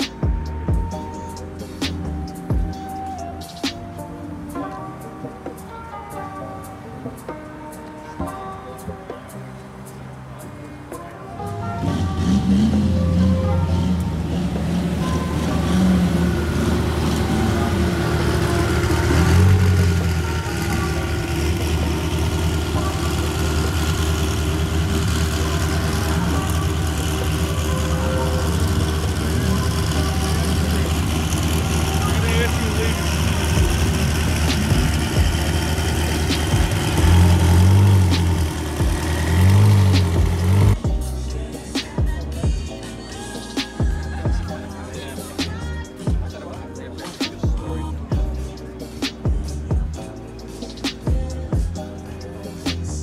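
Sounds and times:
engine revving: 11.6 - 45.9
car engine running at low speed: 11.9 - 44.5.

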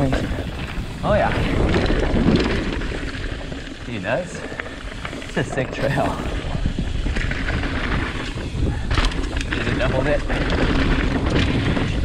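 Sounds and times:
bike tyres drumming over boards: 0.0 - 3.8, 4.9 - 12.0
bike rattling: 0.0 - 12.0
wind noise on microphone: 0.0 - 12.0.

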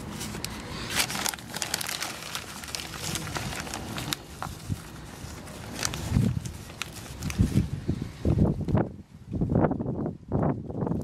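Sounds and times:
plastic cups and soil rustling: 0.0 - 8.8.

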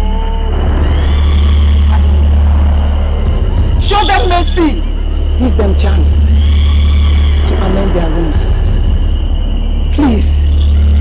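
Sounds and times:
low rumbling drone: 0.0 - 11.0.

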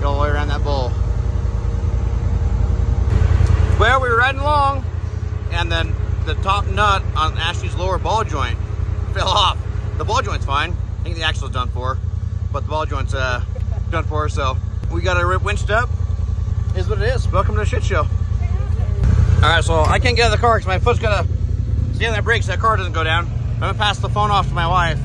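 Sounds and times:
people talking: 0.0 - 1.0, 3.8 - 4.9, 5.5 - 15.9, 16.7 - 21.3, 21.9 - 25.0
engine idling: 0.0 - 25.0.

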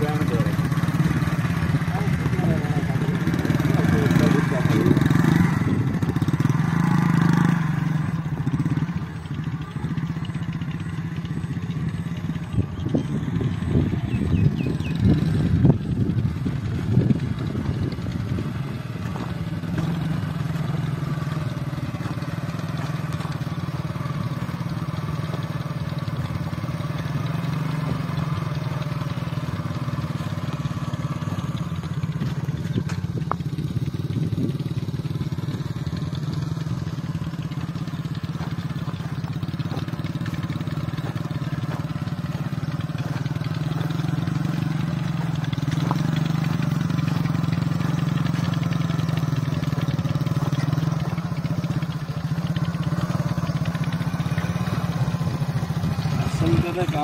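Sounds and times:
small motorcycle engine running: 0.0 - 57.0.

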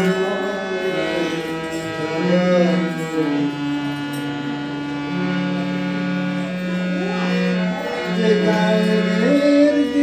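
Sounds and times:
harmonium chord: 0.0 - 10.0.

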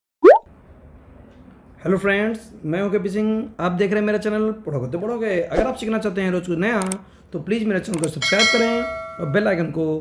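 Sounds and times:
rising bloop sound effect: 0.2 - 0.4.

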